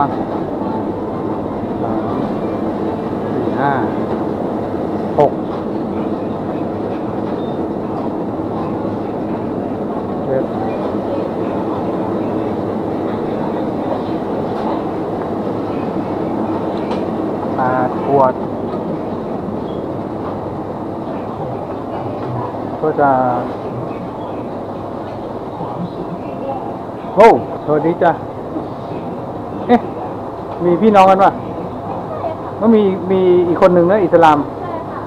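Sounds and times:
refrigerated coolers humming: 0.0s - 35.0s
person speaking: 3.2s - 4.1s, 17.5s - 18.5s, 20.9s - 24.6s, 25.5s - 30.0s.

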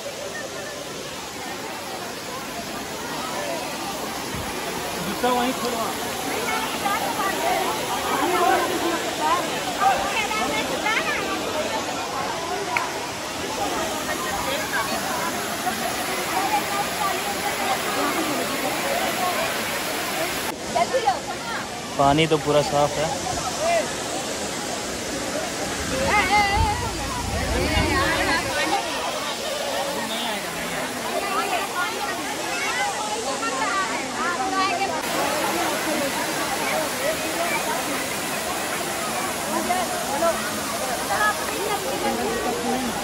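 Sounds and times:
people talking: 0.0s - 43.0s
waterfall rushing: 0.0s - 43.0s.

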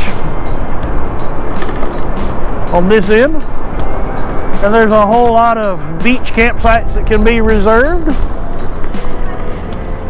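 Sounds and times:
background music: 0.0s - 10.0s
wheels rumbling on concrete: 0.0s - 10.0s
wind rushing over microphone: 0.0s - 10.0s.

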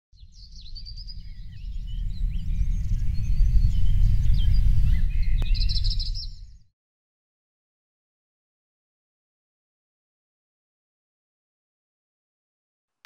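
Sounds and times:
birds chirping and calling: 0.3s - 6.5s
deep steady rumble: 1.0s - 6.0s.

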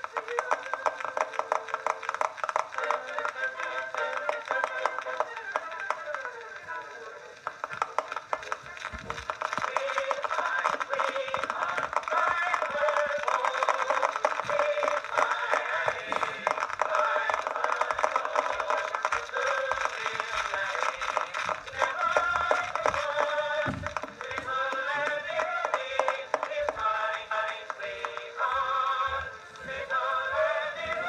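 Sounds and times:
phonograph surface crackle: 0.0s - 31.0s
mixed chorus singing: 2.8s - 5.2s, 9.3s - 31.0s.

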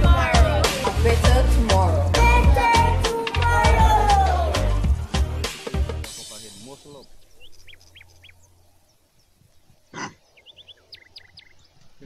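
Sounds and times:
faint bird chirps: 6.6s - 12.0s
animal grunting: 9.8s - 10.5s.

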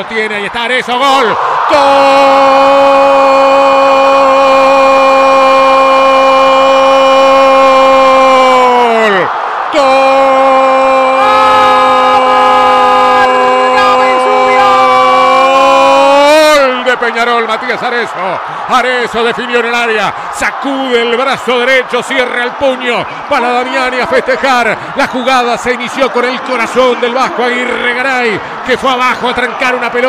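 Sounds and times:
commentator's long goal cry: 10.2s - 16.3s
quick breath: 18.4s - 18.7s.

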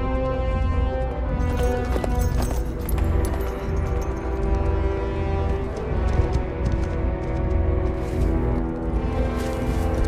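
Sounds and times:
horse hoofbeats galloping: 0.0s - 10.0s
orchestral film music: 0.0s - 10.0s.

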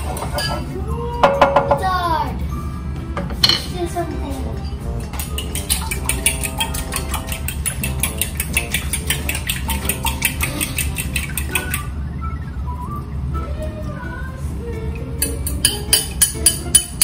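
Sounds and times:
utensil clinking glass bowl: 0.0s - 0.7s, 5.1s - 11.9s, 15.2s - 17.0s.

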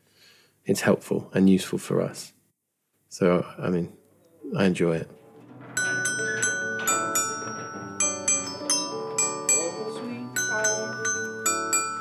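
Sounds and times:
glockenspiel melody: 5.6s - 12.0s.

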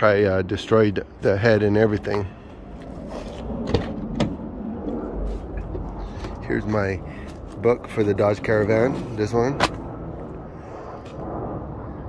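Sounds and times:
rumbling handling noise: 1.2s - 11.4s.

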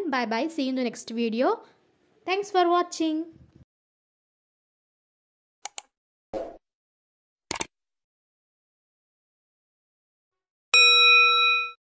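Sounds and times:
bright bell ding: 10.8s - 11.8s.

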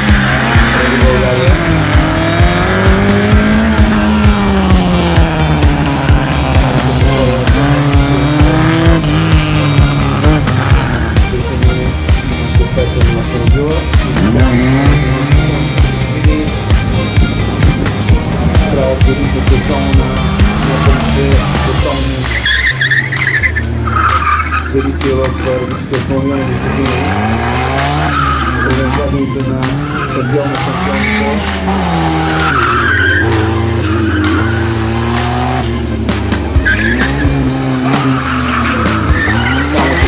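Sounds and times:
tyres squealing: 0.0s - 11.3s, 19.7s - 40.0s
racing buggy engine revving: 0.0s - 40.0s.

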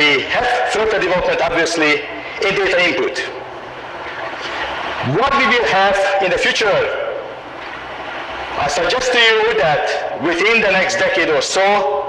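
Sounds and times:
man speaking: 0.0s - 3.4s, 5.0s - 7.2s, 8.6s - 12.0s
low hum: 0.0s - 12.0s
cassette tape hiss: 2.2s - 5.5s.

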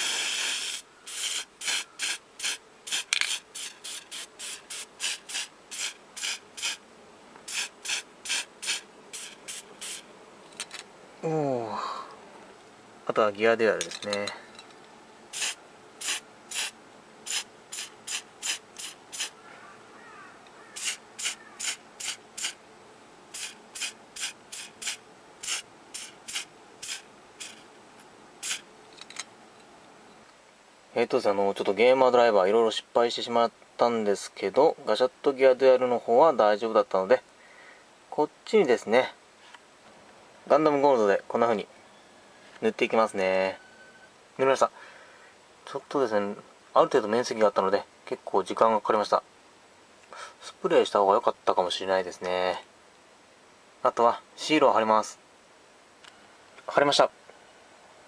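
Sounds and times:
spray paint can hissing: 0.0s - 6.8s, 7.4s - 10.0s, 15.3s - 19.4s, 20.8s - 22.6s, 23.3s - 27.6s, 28.4s - 28.6s.

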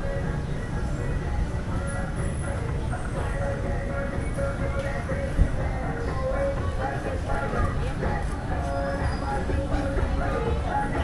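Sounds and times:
faint music: 0.0s - 11.0s
people's voices: 0.0s - 11.0s
steady low rumble: 0.0s - 11.0s.

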